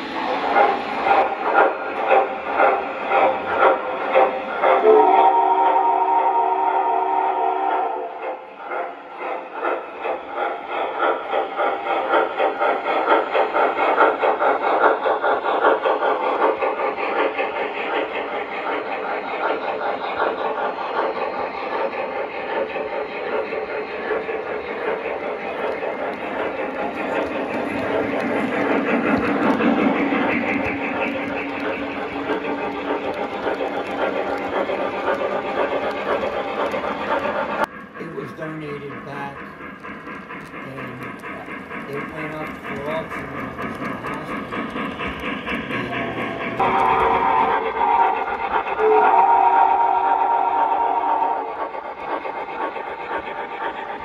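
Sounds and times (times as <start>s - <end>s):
model train cars rumbling on track: 0.0s - 54.0s
pulsing steam chuff: 0.0s - 54.0s
model steam whistle: 4.8s - 8.0s, 46.6s - 51.5s.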